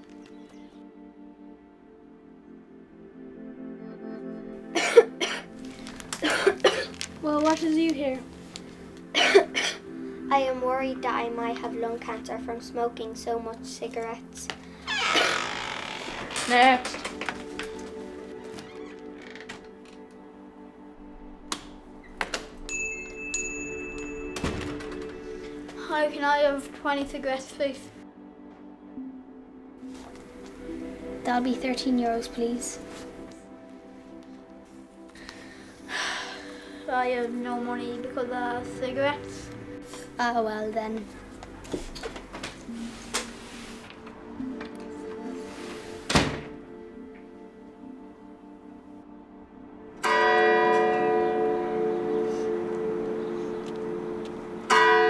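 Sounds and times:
slow held chords music: 0.0 - 55.0
door shutting thud: 24.4 - 25.2, 46.1 - 46.6.

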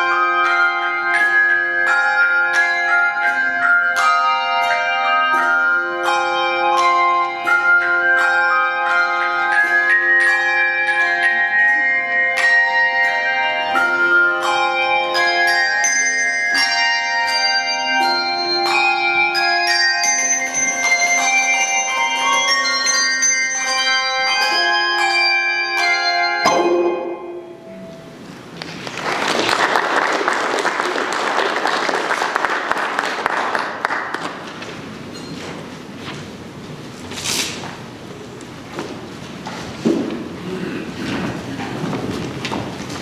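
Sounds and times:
handbell choir playing: 0.0 - 28.2.

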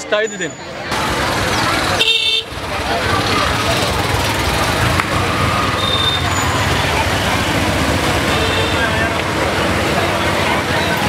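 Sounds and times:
crowd chatter: 0.0 - 11.0
passing motor vehicles: 0.6 - 11.0.

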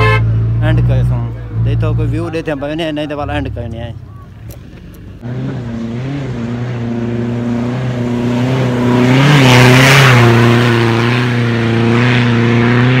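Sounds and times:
rally car engine at high revs: 5.2 - 13.0.

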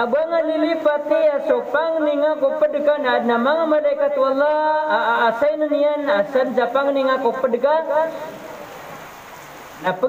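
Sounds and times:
man speaking: 0.0 - 8.4, 9.8 - 10.0
steady hiss: 0.0 - 10.0.

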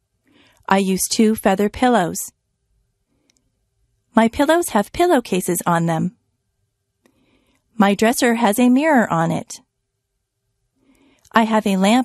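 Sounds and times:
woman narrating: 0.7 - 2.3, 4.2 - 6.2, 7.8 - 9.6, 11.3 - 12.0
faint click: 3.2 - 3.5.

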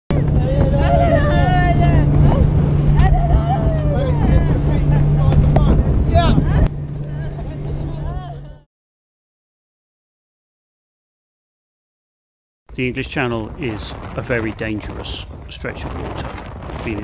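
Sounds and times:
voices calling out: 0.1 - 8.6
wind noise on microphone: 0.1 - 8.6, 12.7 - 17.0
boat engine running: 0.1 - 8.7, 12.7 - 17.0.

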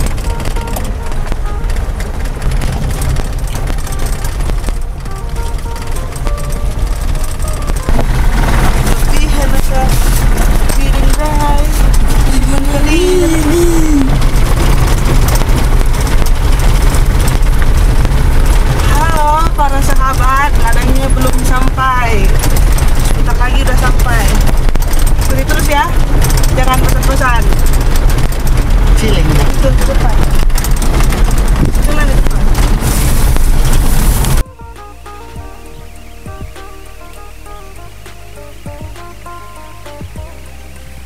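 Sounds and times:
car engine and road rumble: 0.0 - 41.0.

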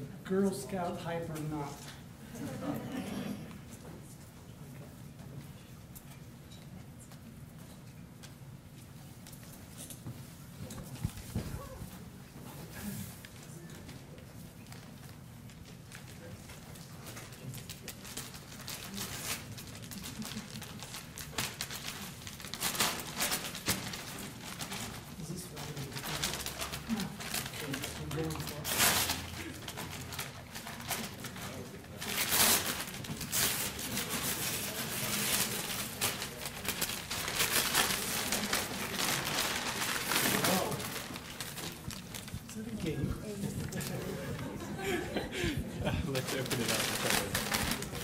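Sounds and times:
wrapping paper ripping: 14.6 - 42.8, 46.1 - 48.0.

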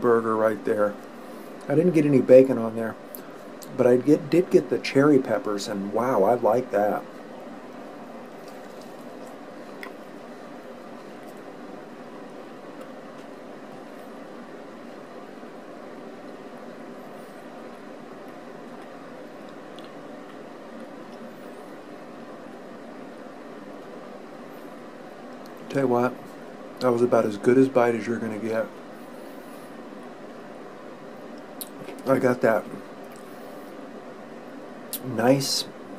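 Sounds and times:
steady background noise: 0.0 - 35.9
person chewing: 8.3 - 11.5, 17.4 - 21.4.

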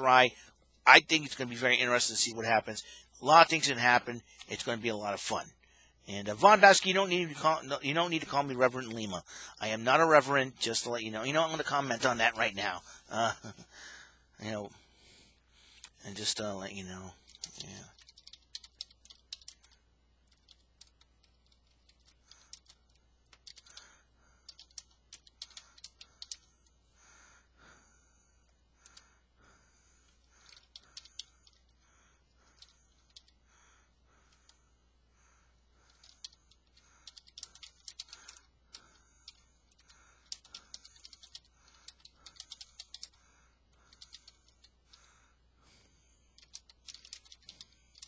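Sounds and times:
faint keyboard typing: 15.8 - 26.8, 28.8 - 29.2, 29.9 - 34.6, 35.7 - 48.0.

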